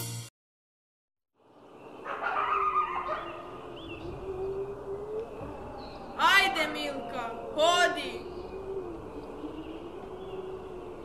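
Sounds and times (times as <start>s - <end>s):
small birds chirping: 1.4s - 11.0s.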